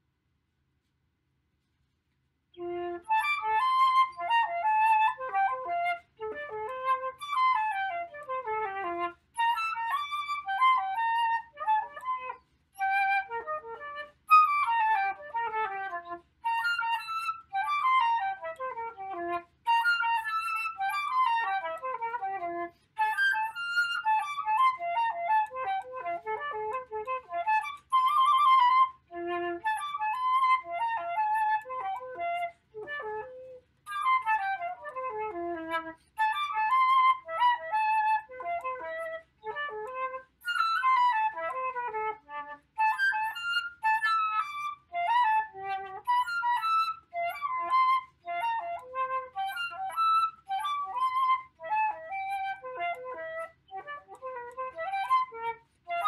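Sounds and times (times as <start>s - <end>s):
flute playing fast runs: 2.6s - 56.0s.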